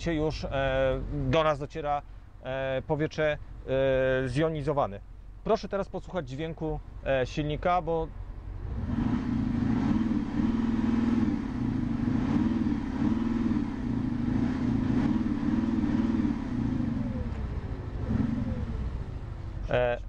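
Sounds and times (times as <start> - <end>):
diesel engine revving: 8.1 - 20.0.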